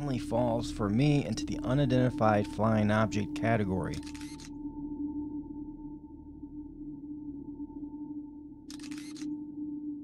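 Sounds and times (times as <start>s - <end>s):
ambient music low drone: 0.0s - 10.0s.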